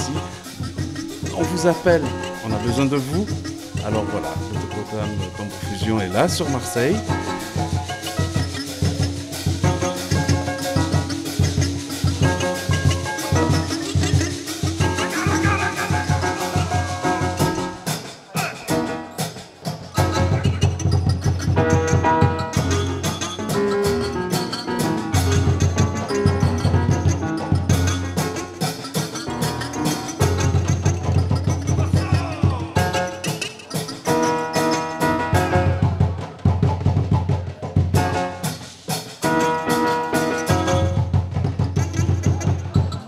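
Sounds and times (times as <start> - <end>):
guitar and keyboard chords: 0.0 - 19.3
congas and hand drums: 0.0 - 43.0
live band playing groove: 0.0 - 43.0.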